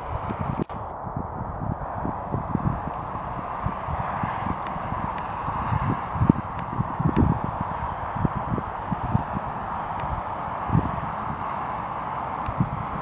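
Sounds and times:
faint airplane engine hum: 0:00.0 - 0:13.0
wind buffeting microphone: 0:00.0 - 0:13.0.

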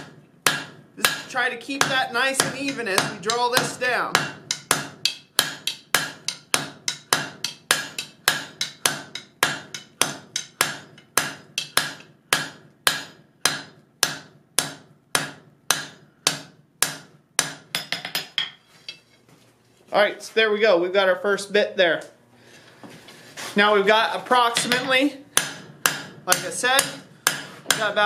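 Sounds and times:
hammer striking steel on anvil: 0:00.0 - 0:19.0, 0:24.5 - 0:28.0.

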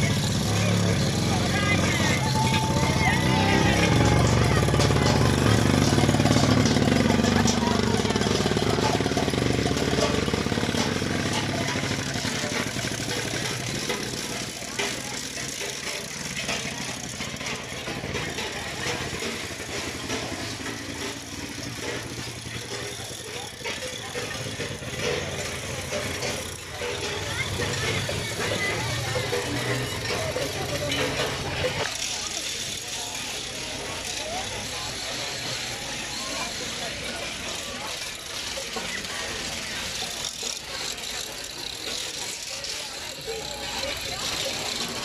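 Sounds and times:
crowd chatter: 0:00.0 - 0:45.0.

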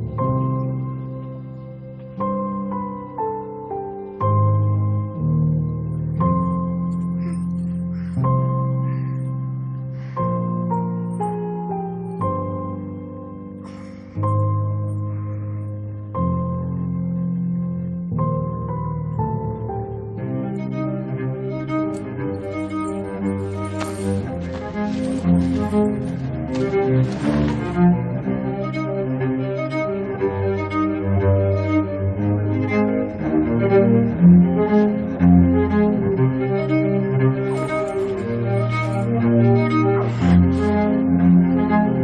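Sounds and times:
low bass line: 0:00.0 - 0:02.7, 0:04.2 - 0:13.6, 0:14.2 - 0:42.0
bowed strings slow melody: 0:00.0 - 0:42.0.

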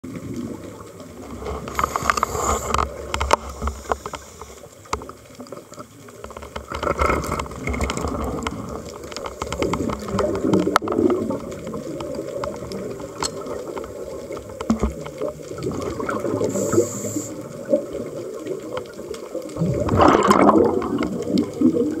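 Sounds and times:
murky underwater noise: 0:00.0 - 0:22.0
air bubbling underwater: 0:19.6 - 0:22.0.

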